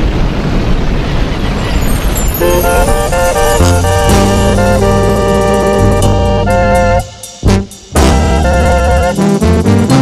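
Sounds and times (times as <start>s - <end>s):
rushing noise: 0.0s - 9.4s
short horn notes: 2.6s - 10.0s
deep bass note: 3.8s - 10.0s.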